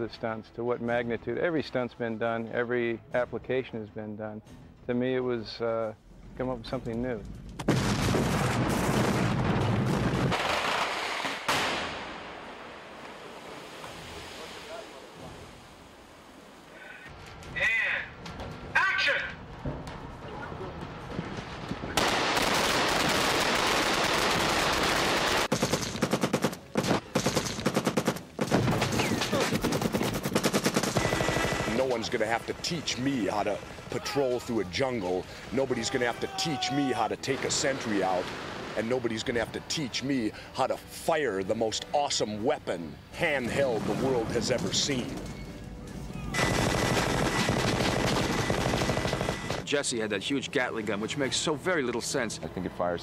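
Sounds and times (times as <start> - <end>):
automatic gunfire: 22.0 - 32.1, 46.4 - 49.6
minigun firing continuous burst: 22.0 - 32.4, 46.4 - 49.7
dense battle noise: 28.4 - 36.5, 43.5 - 45.3, 46.1 - 49.6.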